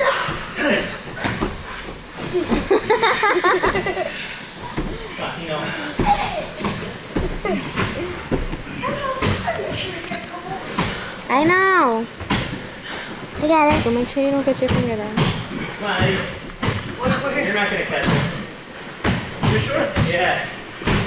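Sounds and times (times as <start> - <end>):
knocks and thumps: 6.0 - 9.6, 13.4 - 17.3.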